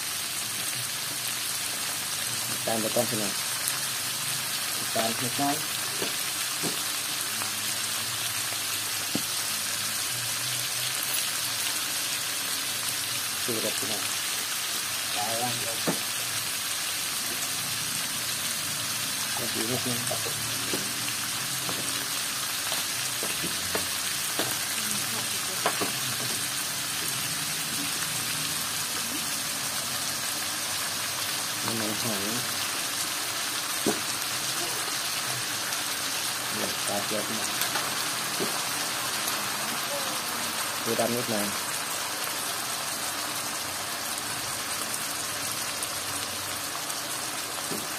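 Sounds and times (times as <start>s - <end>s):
meat sizzling in a wok: 0.0s - 47.9s.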